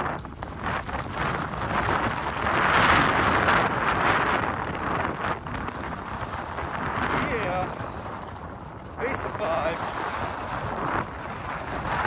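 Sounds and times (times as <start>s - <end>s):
skis scraping on snow: 0.0s - 12.0s
wind rumble on microphone: 0.0s - 12.0s.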